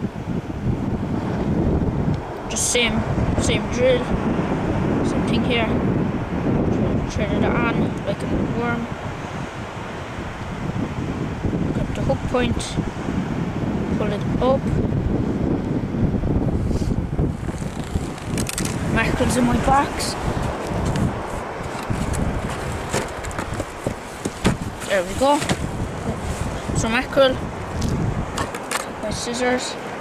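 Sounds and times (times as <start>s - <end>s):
surf washing: 0.0s - 30.0s
wind buffeting microphone: 0.0s - 30.0s.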